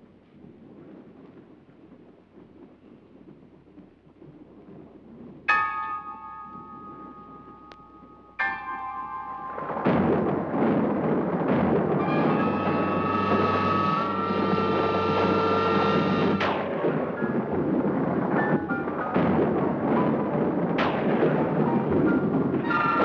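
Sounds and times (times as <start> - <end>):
loud rumbling swell: 10.4 - 19.1
high held chord tones: 12.0 - 16.5.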